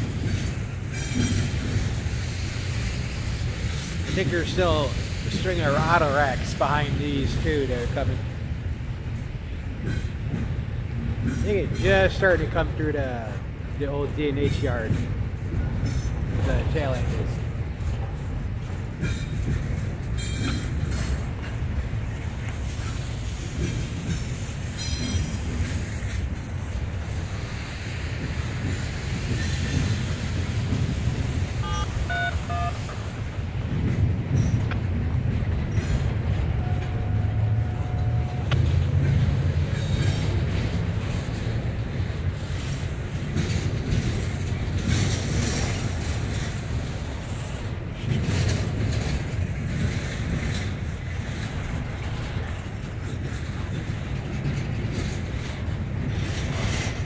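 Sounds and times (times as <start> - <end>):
clickety-clack of wheels on rails: 0.0 - 57.0
freight train rumble: 0.0 - 57.0.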